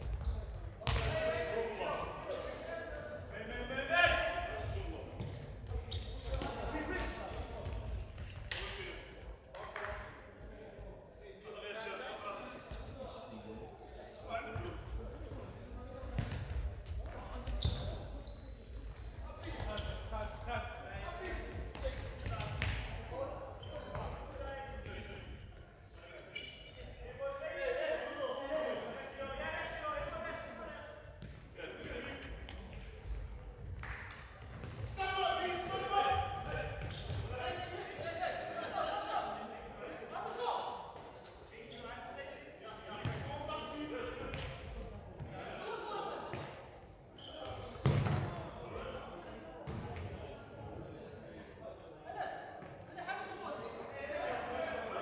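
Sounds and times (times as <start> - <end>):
ball kicked and bouncing indoors: 47.8 - 48.3.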